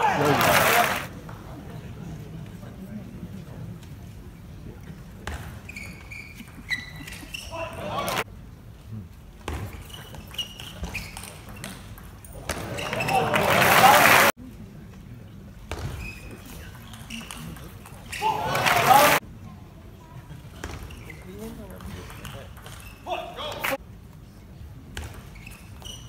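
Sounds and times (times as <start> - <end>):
crowd applause and cheering: 0.0 - 1.1, 12.8 - 14.3, 18.4 - 19.2
shoes squeaking on floor: 5.3 - 8.2, 9.5 - 13.4, 15.7 - 18.6, 20.6 - 23.8, 25.0 - 26.0.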